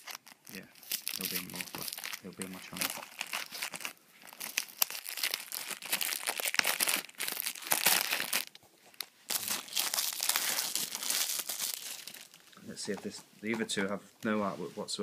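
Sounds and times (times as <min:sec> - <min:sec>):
plastic wrap crinkling and tearing: 0:00.0 - 0:12.6.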